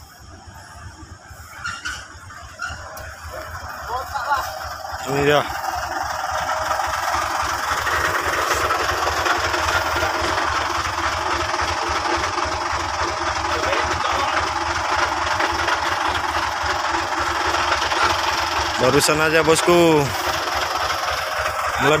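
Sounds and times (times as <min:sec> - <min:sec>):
diesel truck engine idling: 0:00.0 - 0:22.0.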